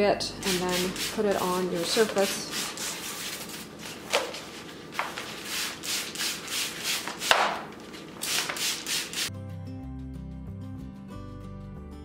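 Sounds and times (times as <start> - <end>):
paper rustling: 0.5 - 9.3
spray bottle hissing spritzes: 5.4 - 9.3
background music: 9.3 - 12.0.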